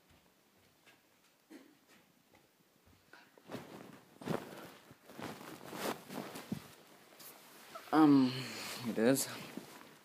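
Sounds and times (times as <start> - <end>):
fabric rustling swishes: 3.4 - 8.0.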